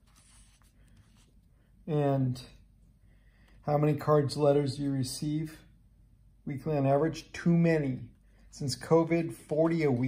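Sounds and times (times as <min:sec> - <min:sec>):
paper rustling on a table: 0:00.0 - 0:01.4
man talking: 0:01.9 - 0:02.7, 0:03.6 - 0:05.7, 0:06.4 - 0:10.0.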